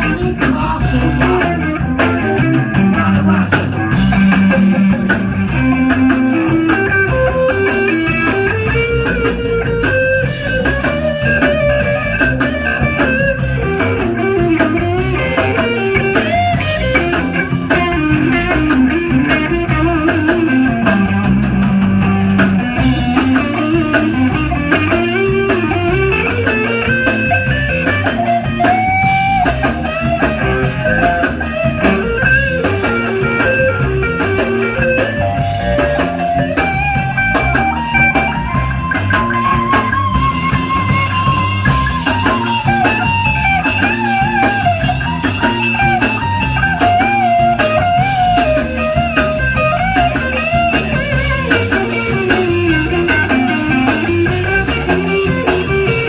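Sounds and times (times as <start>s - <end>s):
drums and bass: 0.0s - 56.0s
electric guitar lead: 0.0s - 56.0s.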